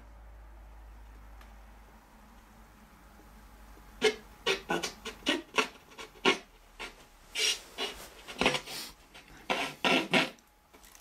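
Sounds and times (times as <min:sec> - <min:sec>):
low room hum: 0:00.0 - 0:11.0
footsteps crunching over debris: 0:10.7 - 0:11.0.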